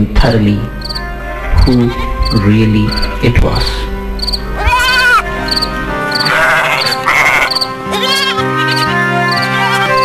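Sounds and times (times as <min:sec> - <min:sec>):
background music with held notes: 0:00.0 - 0:10.0
cricket chirps: 0:00.8 - 0:03.2, 0:04.2 - 0:07.7
sheep bleating: 0:04.6 - 0:10.0.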